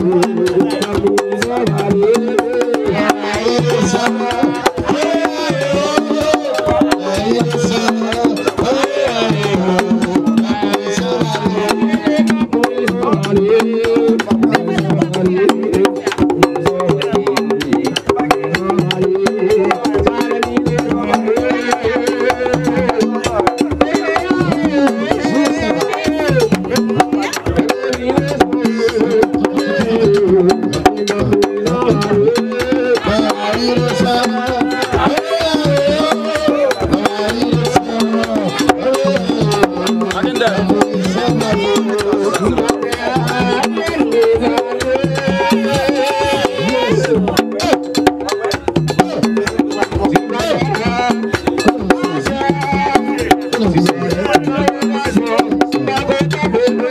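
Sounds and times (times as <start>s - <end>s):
people singing: 0.0s - 56.9s.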